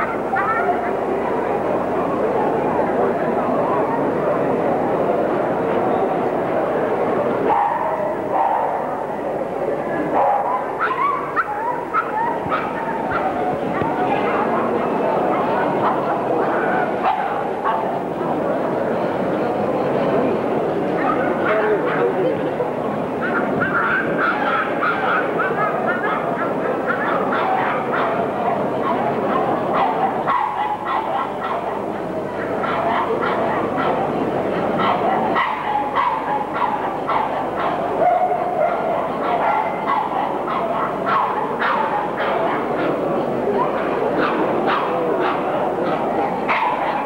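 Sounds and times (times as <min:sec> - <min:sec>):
crowd chatter: 0:00.0 - 0:47.0
dogs barking and yapping: 0:07.4 - 0:09.0, 0:10.1 - 0:18.1, 0:20.9 - 0:22.2, 0:23.2 - 0:34.1, 0:34.7 - 0:43.0, 0:43.6 - 0:47.0.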